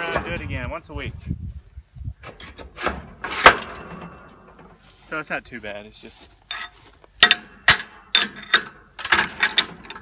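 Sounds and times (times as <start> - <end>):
knocks and clank of wheel fitting: 2.2 - 4.8, 6.5 - 10.0.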